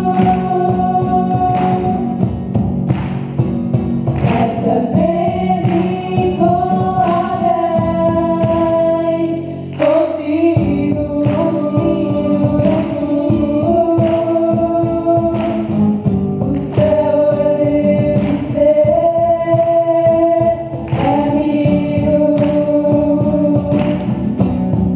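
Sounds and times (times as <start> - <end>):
young voices singing: 0.0 - 2.4, 4.1 - 24.5
cajon beat: 0.0 - 24.9
strummed acoustic guitar: 0.0 - 24.9.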